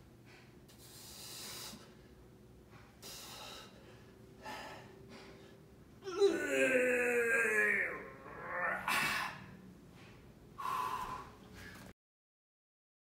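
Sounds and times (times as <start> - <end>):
man gasping breath: 0.3 - 2.2, 2.8 - 5.6, 10.0 - 11.9
man groaning with effort: 6.0 - 9.5.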